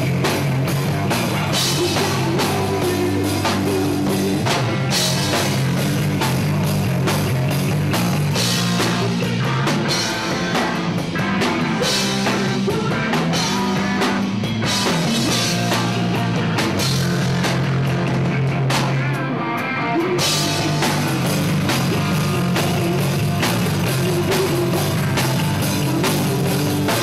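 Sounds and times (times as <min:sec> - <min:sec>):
bass guitar: 0:00.0 - 0:27.0
drum kit: 0:00.0 - 0:27.0
electric guitar: 0:00.0 - 0:27.0
woman singing: 0:01.6 - 0:04.4, 0:23.8 - 0:27.0.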